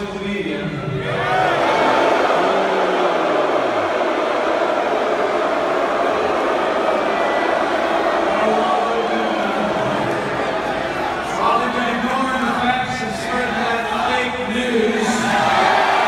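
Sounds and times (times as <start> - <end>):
crowd shouting: 1.0 - 11.8.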